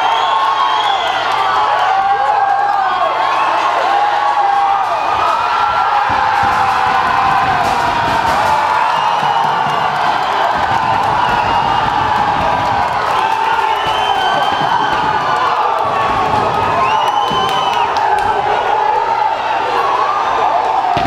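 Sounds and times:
crowd cheering and shouting: 0:00.0 - 0:21.0.

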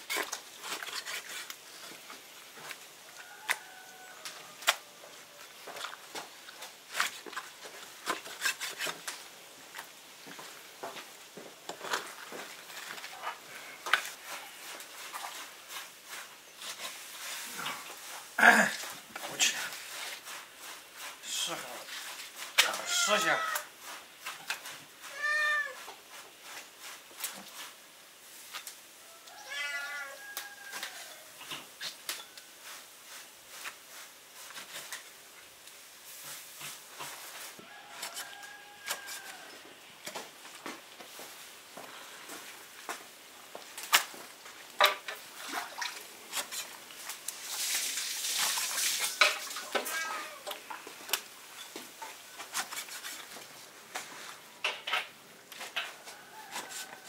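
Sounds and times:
cat meowing: 0:22.8 - 0:23.7, 0:25.1 - 0:25.8, 0:29.4 - 0:30.2, 0:49.7 - 0:50.5.

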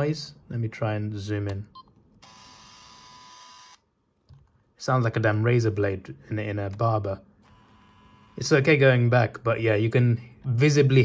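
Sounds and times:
camera zoom lens grinding buzz: 0:02.2 - 0:03.8.

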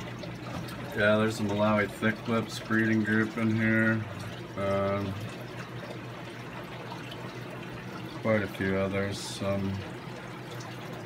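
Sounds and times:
low steady hum: 0:00.0 - 0:11.0
water trickling and splashing: 0:00.0 - 0:11.0.

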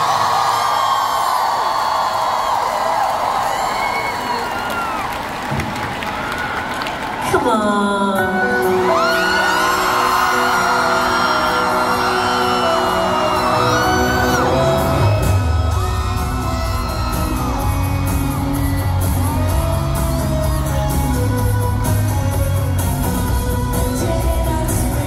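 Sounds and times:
crowd whooping and cheering: 0:00.0 - 0:07.4, 0:08.4 - 0:25.0
bass line: 0:14.2 - 0:25.0.

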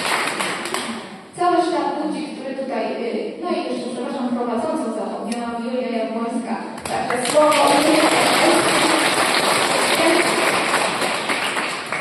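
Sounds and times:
audience applauding: 0:00.0 - 0:01.1, 0:07.0 - 0:12.0.

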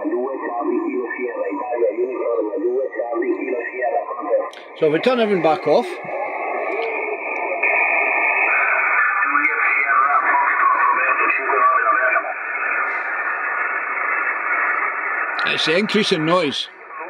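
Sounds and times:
voice over radio: 0:00.0 - 0:06.2, 0:09.0 - 0:13.3, 0:15.4 - 0:16.8
radio band noise hiss: 0:00.0 - 0:17.0.

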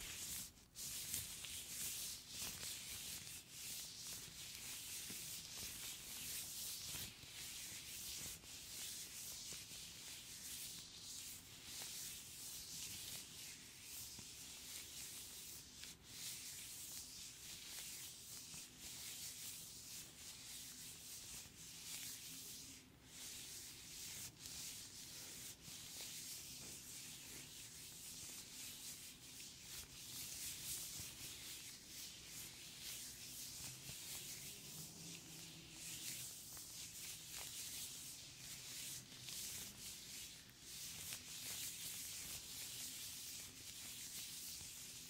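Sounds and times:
latex gloves rubbing together: 0:00.0 - 0:45.0.

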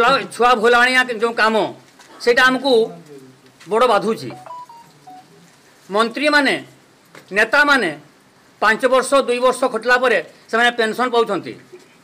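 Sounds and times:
man speaking: 0:00.0 - 0:05.2
faint short beeps: 0:04.3 - 0:05.3.

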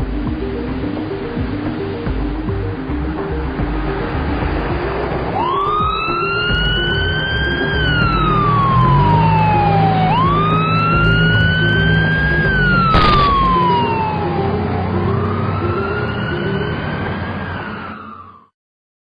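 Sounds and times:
background music with bass: 0:00.0 - 0:17.4
siren wailing: 0:00.0 - 0:18.5.

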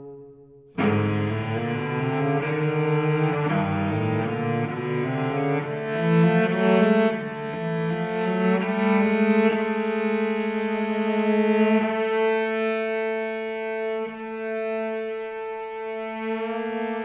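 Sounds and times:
cello bowed notes: 0:00.0 - 0:17.0.

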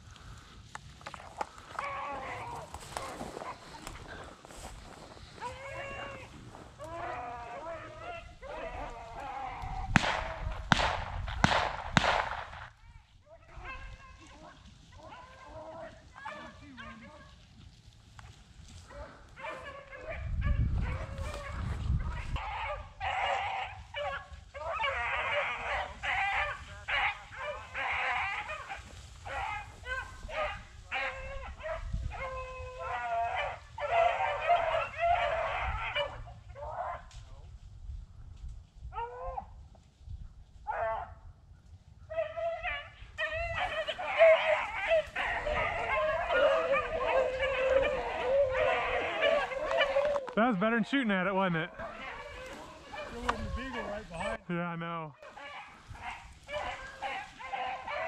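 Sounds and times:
dogs baying: 0:01.4 - 0:10.6, 0:13.4 - 0:17.4, 0:18.8 - 0:37.1, 0:42.1 - 0:50.6, 0:51.7 - 0:54.4, 0:55.2 - 0:58.0.

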